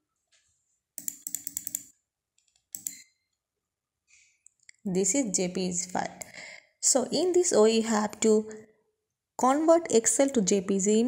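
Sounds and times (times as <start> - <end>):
computer mouse or keys clicking: 1.0 - 3.0.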